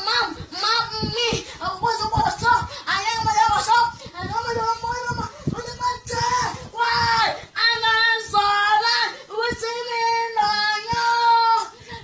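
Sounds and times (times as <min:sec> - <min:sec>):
child singing loudly: 0:00.0 - 0:11.8.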